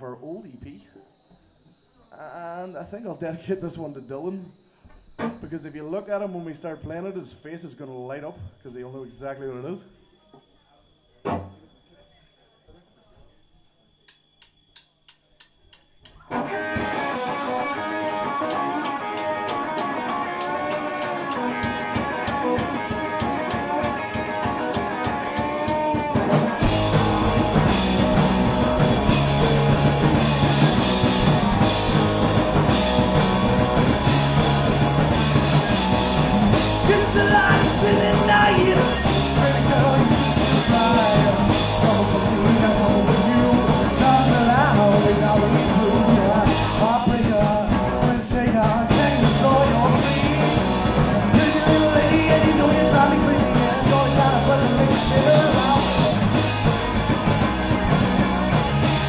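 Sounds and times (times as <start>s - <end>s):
evenly spaced clicks: 14.1s - 16.2s
ticking beat: 14.1s - 59.0s
electric guitar: 16.1s - 59.0s
bass and drum kit: 16.3s - 59.0s.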